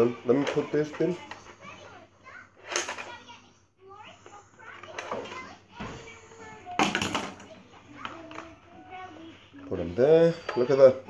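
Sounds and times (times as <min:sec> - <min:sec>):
plastic toy pieces clattering: 0:02.6 - 0:03.3
child's quiet voice: 0:03.1 - 0:06.9.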